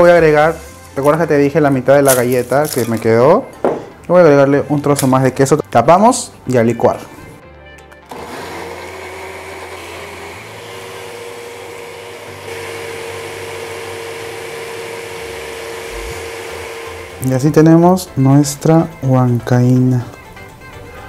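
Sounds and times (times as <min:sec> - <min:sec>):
blender running: 0:08.1 - 0:17.5.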